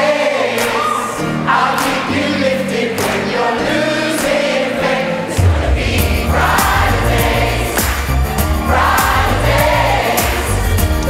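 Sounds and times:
backing music: 0.0 - 11.0
large choir singing: 0.0 - 11.0
strong bass: 5.4 - 11.0.

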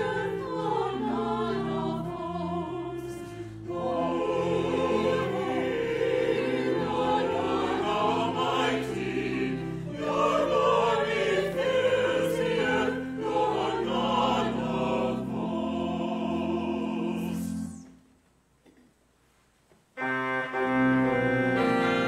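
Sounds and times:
choir singing: 0.0 - 18.0.

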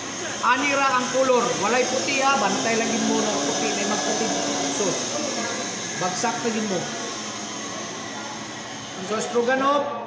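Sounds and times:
mechanical hum with high hiss: 0.0 - 10.0.

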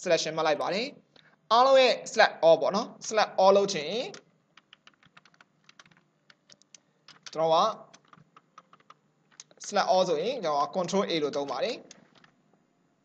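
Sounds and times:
computer keyboard typing: 4.0 - 9.9, 10.6 - 12.4.

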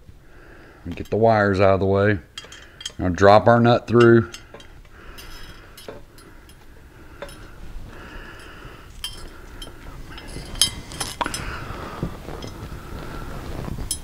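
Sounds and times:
metal clinks inside a tube: 2.3 - 3.1, 3.9 - 6.6, 7.2 - 7.6, 8.4 - 11.6, 12.3 - 12.6.

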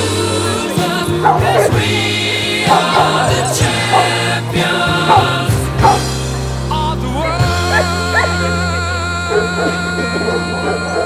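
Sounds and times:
background music: 0.0 - 11.0
dog whining and yipping: 5.1 - 6.0.

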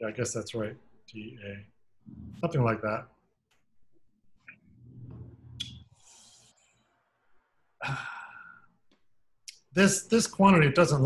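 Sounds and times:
man sighing and breathing out: 7.8 - 8.7.

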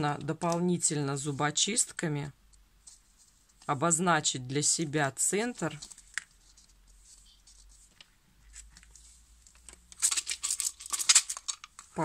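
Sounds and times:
tape peeling crackle: 9.9 - 11.9.

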